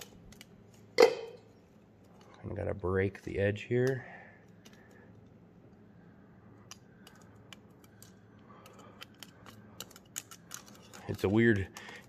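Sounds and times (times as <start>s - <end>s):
metal tongs clicking and scraping: 3.2s - 5.3s, 6.6s - 12.0s.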